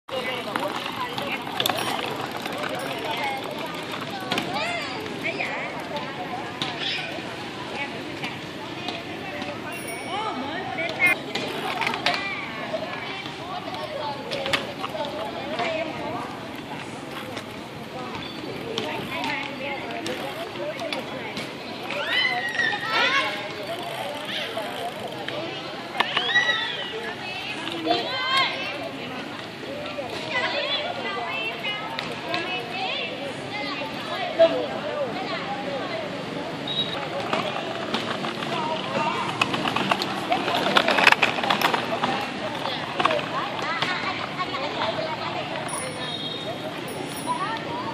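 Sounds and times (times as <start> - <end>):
outdoor background noise: 0.0 - 47.9
voices: 0.0 - 47.9
bicycle rattling over brick paving: 0.1 - 47.9.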